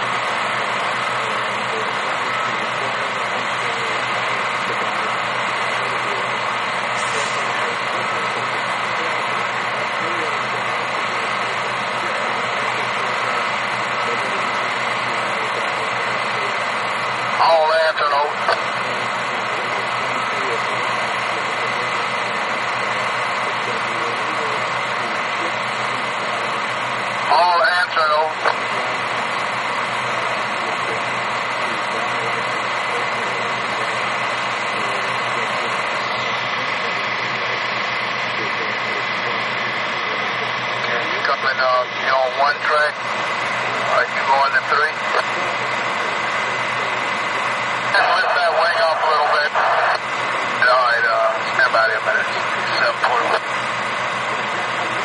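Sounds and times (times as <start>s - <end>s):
diesel engine running: 0.0s - 55.0s
voice over radio scanner: 0.8s - 29.2s, 30.0s - 43.0s, 43.6s - 53.6s.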